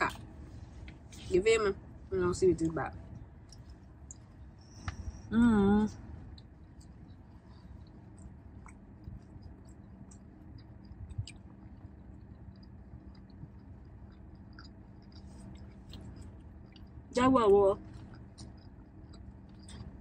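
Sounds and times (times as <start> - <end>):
low steady hum: 0.0 - 20.0
close chewing: 6.3 - 17.1, 17.9 - 20.0.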